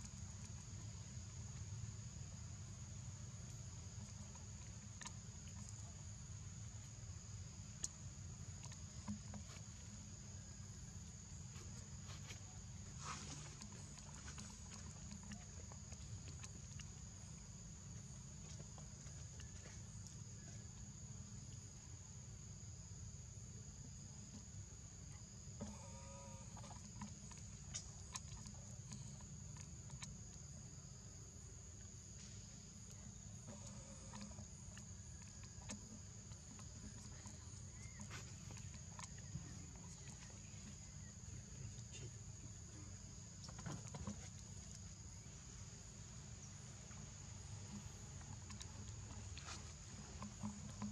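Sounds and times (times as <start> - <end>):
faint chirp: 36.3 - 43.5.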